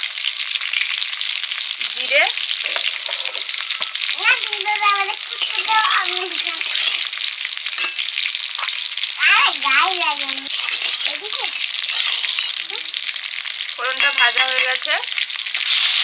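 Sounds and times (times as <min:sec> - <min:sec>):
spices sizzling in hot oil: 0:00.0 - 0:16.0
metal spatula stirring: 0:02.4 - 0:04.4, 0:05.2 - 0:08.9, 0:10.1 - 0:13.1.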